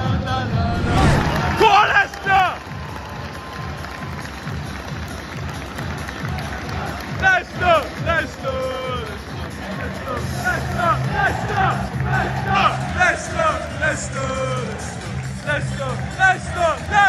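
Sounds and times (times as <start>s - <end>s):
crowd noise: 0.0s - 17.0s
stadium music with steady beat: 0.0s - 17.0s
people shouting or singing: 0.4s - 2.6s, 9.8s - 17.0s.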